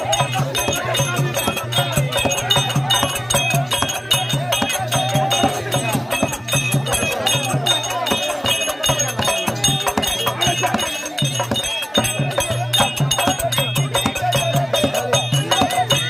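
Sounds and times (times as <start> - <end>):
quick hand-drum strokes: 0.0 - 16.0.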